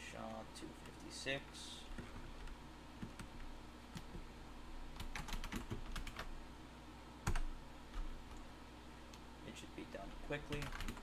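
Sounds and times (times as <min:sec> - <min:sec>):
typing on computer keyboard: 0:05.0 - 0:06.3, 0:07.2 - 0:08.1, 0:10.4 - 0:11.0.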